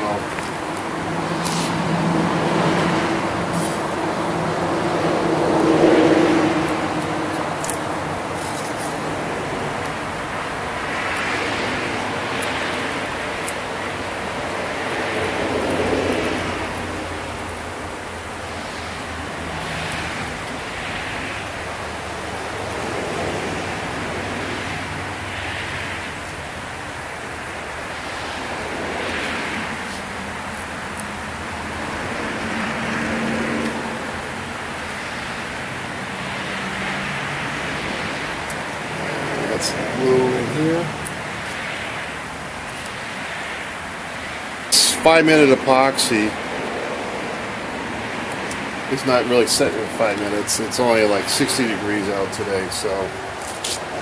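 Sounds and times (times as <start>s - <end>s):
road traffic passing: 0.0s - 54.0s.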